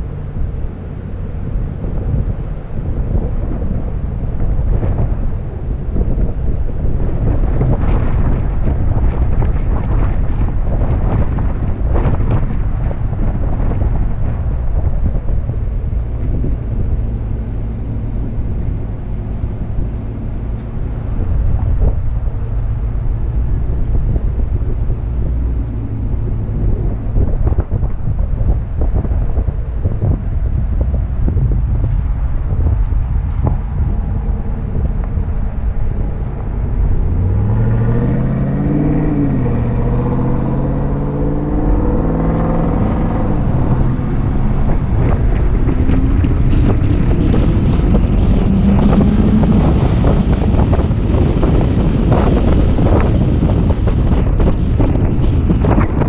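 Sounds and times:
truck engine and tyres rumbling: 0.0 - 56.0
wind on microphone: 0.0 - 56.0.

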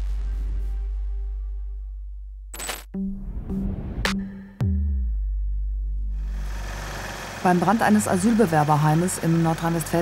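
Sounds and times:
deep bass tone: 0.0 - 7.0.

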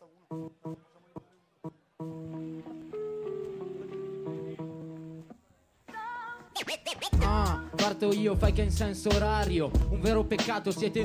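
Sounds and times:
music: 0.0 - 11.0
record scratching: 6.5 - 8.0.

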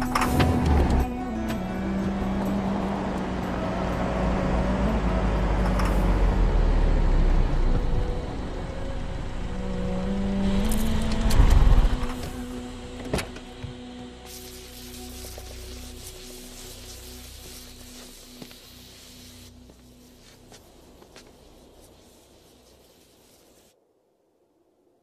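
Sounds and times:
car driving along road: 0.0 - 14.3
steam hissing from engine: 13.8 - 23.8.

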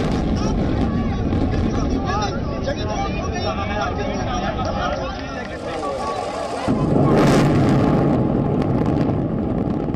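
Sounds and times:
rumble of collapsing buildings: 5.7 - 9.9.

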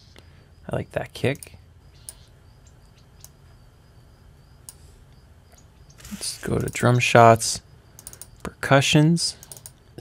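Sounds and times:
low steady hum: 0.0 - 10.0
computer mouse clicks: 8.0 - 8.5, 9.4 - 9.8.

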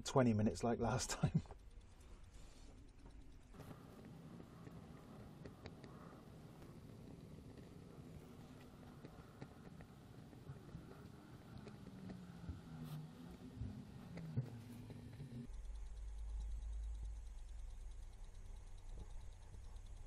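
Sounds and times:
faint ticks: 0.0 - 20.0
low hum: 0.0 - 20.0.

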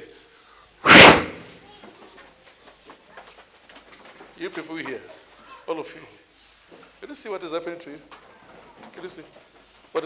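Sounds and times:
loud sudden burst of noise: 0.8 - 1.5.

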